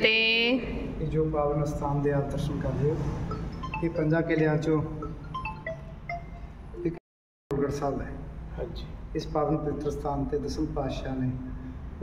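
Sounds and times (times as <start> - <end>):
wind chime tinkling: 3.3 - 7.0
steady low hum: 6.8 - 12.0.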